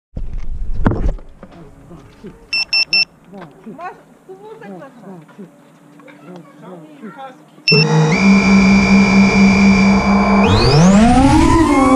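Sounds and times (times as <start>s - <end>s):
high-pitched electronic beeps: 7.7s - 11.9s.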